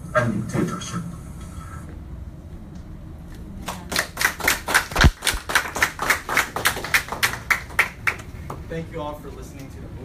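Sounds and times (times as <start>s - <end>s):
audience clapping: 3.6s - 8.7s.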